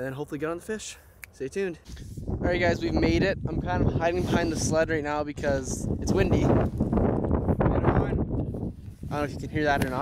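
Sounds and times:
wind buffeting microphone: 0:01.5 - 0:10.0.

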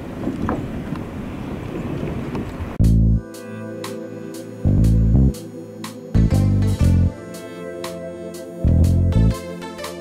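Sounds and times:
wind buffeting microphone: 0:00.0 - 0:02.8
music with deep bass and beat: 0:02.8 - 0:10.0.

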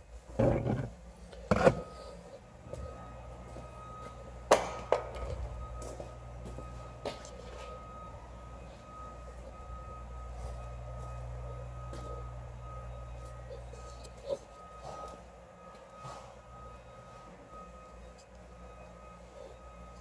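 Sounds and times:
steady low hum: 0:00.0 - 0:20.0
faint steady high tone: 0:01.3 - 0:20.0.

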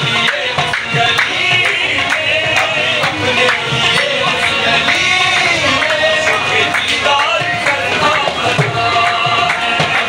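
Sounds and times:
harmoniums: 0:00.0 - 0:10.0
man singing lead: 0:00.0 - 0:10.0
rhythmic hand clapping: 0:00.0 - 0:10.0.

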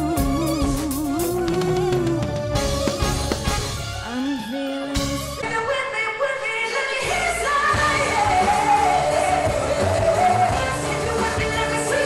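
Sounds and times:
woman singing pop vocal: 0:00.0 - 0:02.4, 0:04.0 - 0:12.0
backing track with bass and drums: 0:00.0 - 0:04.0.

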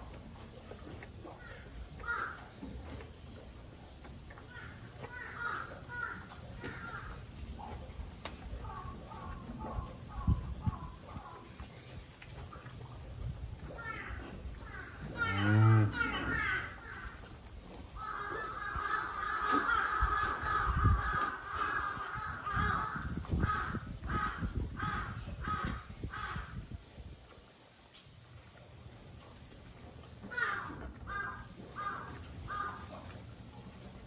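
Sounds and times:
crows cawing: 0:01.5 - 0:02.4, 0:04.6 - 0:07.2, 0:18.0 - 0:26.6, 0:30.3 - 0:32.9.

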